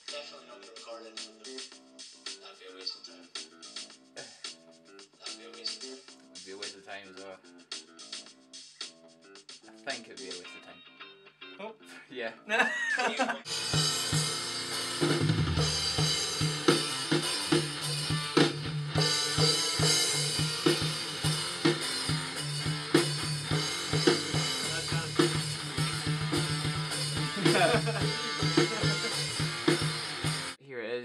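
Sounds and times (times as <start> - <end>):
rock music with drums and guitar: 0.0 - 2.4, 3.2 - 11.5, 12.5 - 30.6.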